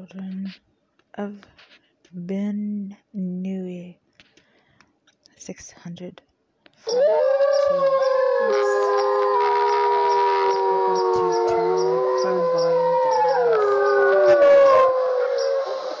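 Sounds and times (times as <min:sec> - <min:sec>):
dogs howling: 0:06.8 - 0:16.0.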